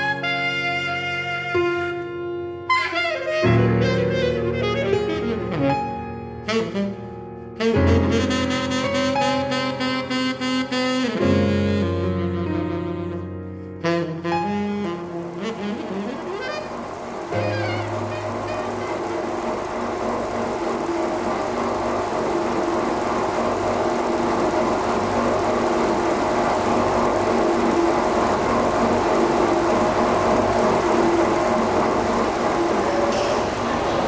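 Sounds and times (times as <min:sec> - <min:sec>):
motor humming: 0:14.3 - 0:34.0
churning noise: 0:15.2 - 0:34.0.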